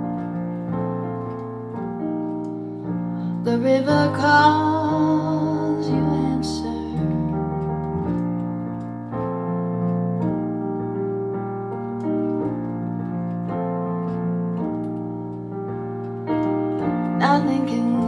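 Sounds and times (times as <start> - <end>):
keyboard playing sustained chords: 0.0 - 18.0.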